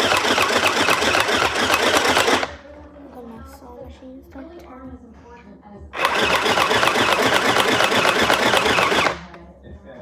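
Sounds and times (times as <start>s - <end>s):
sewing machine running: 0.0s - 2.6s, 6.0s - 9.2s.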